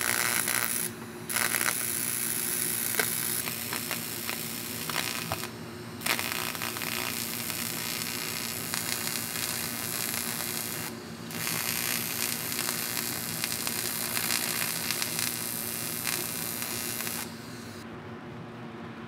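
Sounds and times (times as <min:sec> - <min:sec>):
welding arc buzzing hiss: 0:00.0 - 0:17.8.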